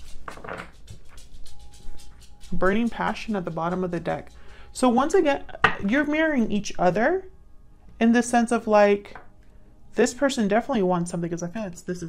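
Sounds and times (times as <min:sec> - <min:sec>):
cards being shuffled: 0:00.0 - 0:02.6
soft background music: 0:00.0 - 0:12.0.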